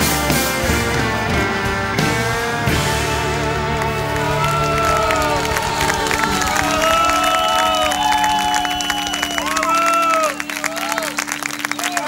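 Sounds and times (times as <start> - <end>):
audience applauding and cheering: 1.9 - 12.0.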